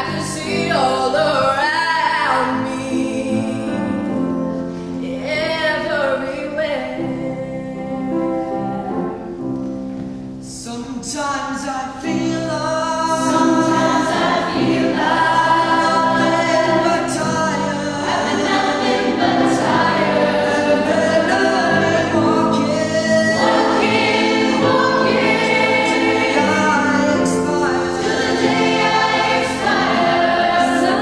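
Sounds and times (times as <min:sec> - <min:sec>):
mixed choir singing in harmony: 0:13.0 - 0:31.0.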